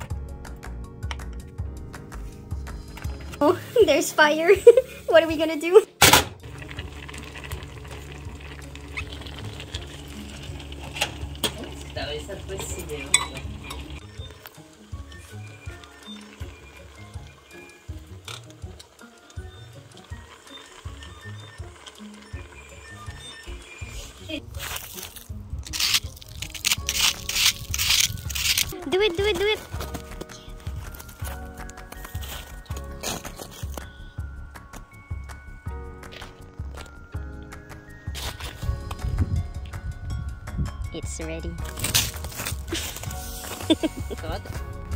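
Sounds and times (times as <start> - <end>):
background music: 0.0 - 44.9
fruit sizzling in a pan: 6.4 - 28.6
ladle clinking in a saucepan: 12.6 - 14.0.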